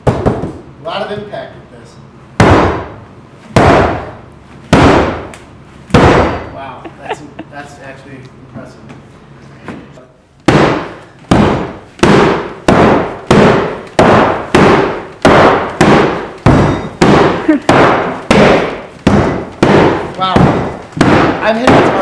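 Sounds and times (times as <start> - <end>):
hammer beating on taut nylon skin: 2.4 - 6.4, 10.4 - 22.0.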